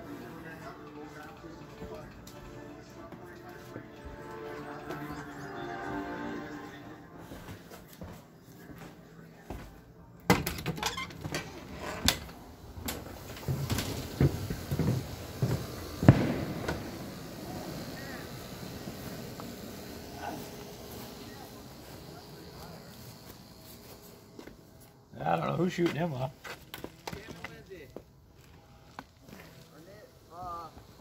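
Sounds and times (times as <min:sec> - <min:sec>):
outdoor background hiss: 0:00.0 - 0:31.0.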